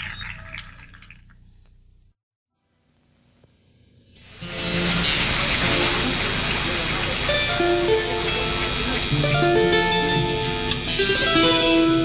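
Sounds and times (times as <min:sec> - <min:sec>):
strummed guitars: 0:04.4 - 0:12.0
folk band music: 0:07.1 - 0:12.0.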